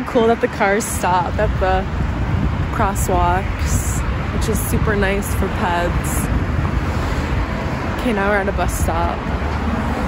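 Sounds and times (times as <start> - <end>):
car traffic passing: 0.0 - 10.0
wind rumble on microphone: 0.0 - 10.0.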